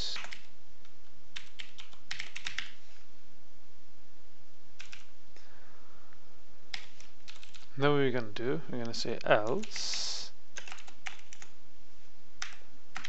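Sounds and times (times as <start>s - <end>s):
typing on computer keyboard: 0.1s - 2.8s, 4.8s - 5.1s, 6.7s - 7.7s, 10.6s - 11.6s, 12.4s - 13.0s.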